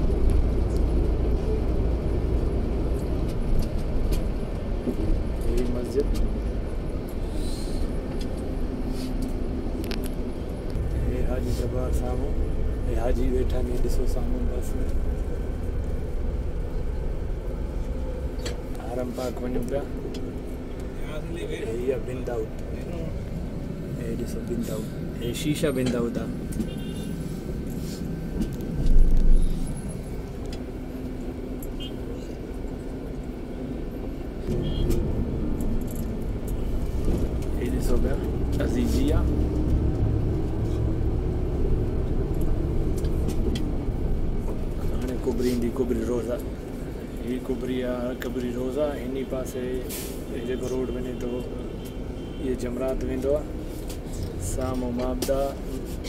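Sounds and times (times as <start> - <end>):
bus engine rumble from inside: 0.0 - 56.0.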